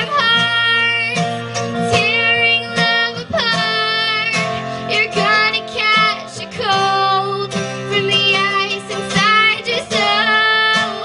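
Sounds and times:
strummed acoustic guitars: 0.0s - 11.0s
young woman singing: 0.0s - 11.0s.

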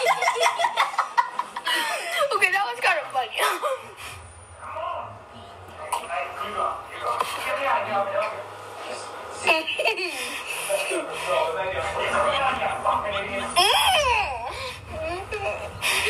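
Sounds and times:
people laughing: 0.0s - 2.4s, 9.4s - 16.0s
people talking: 1.7s - 3.8s, 4.6s - 16.0s.

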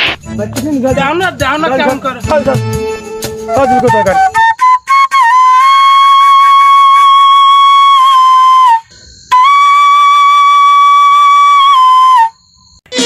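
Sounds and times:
flute-like long held notes: 3.5s - 12.4s.

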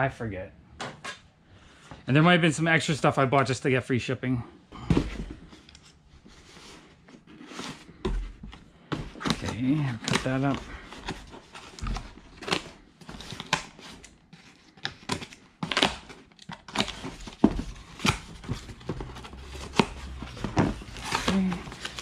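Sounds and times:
cardboard flaps rustling: 16.7s - 22.0s.

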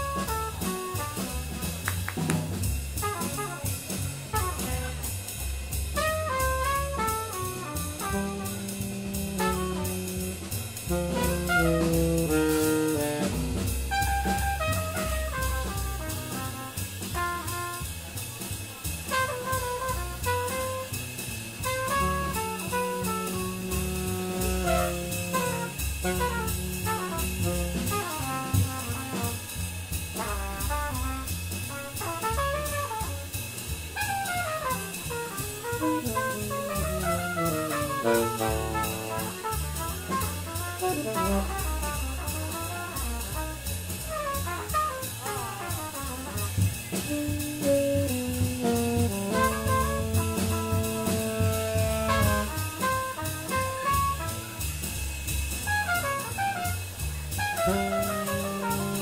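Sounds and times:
tenor saxophone: 0.0s - 1.8s, 6.0s - 17.4s, 19.1s - 20.9s, 21.6s - 29.4s, 30.2s - 33.4s, 34.0s - 54.6s, 55.6s - 59.0s
trumpet: 0.0s - 1.9s, 2.9s - 59.0s
double bass: 0.0s - 59.0s
drum kit with cymbals: 0.0s - 59.0s.

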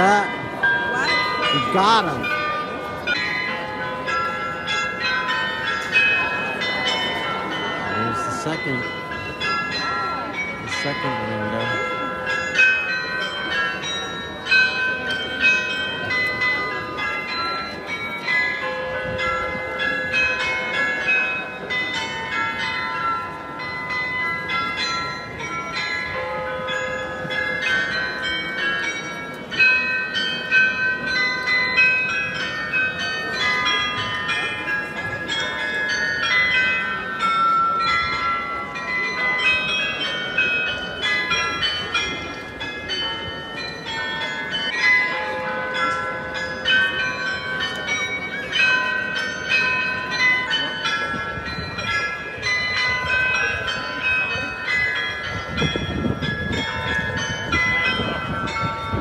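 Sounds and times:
tower bells playing a tune: 0.0s - 59.0s.

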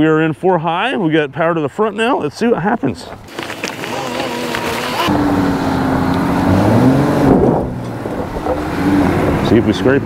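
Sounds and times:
truck engine climbing hill: 3.3s - 10.0s.

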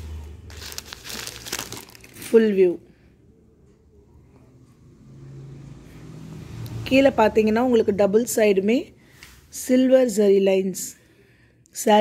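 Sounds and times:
paper crinkling: 0.5s - 2.4s.

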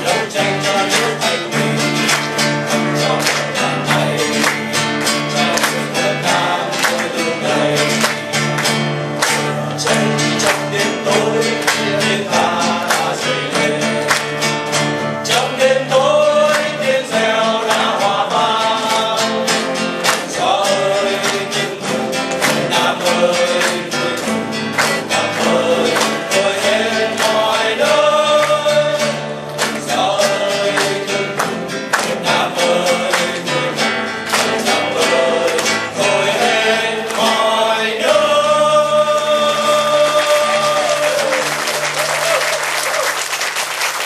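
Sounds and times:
men singing together: 0.0s - 42.3s
acoustic guitar: 0.0s - 44.0s.

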